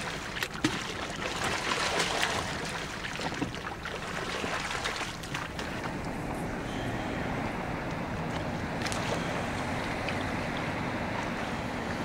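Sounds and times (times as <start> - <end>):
water washing: 0.0 - 6.2.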